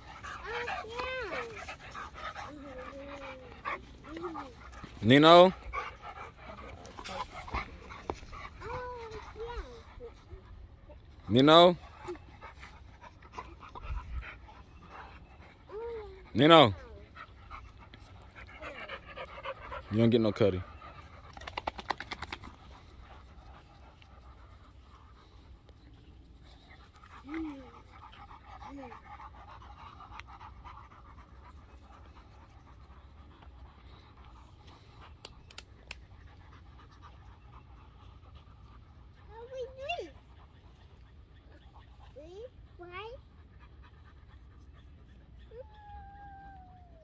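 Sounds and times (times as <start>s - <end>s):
dog panting: 0.0s - 45.7s.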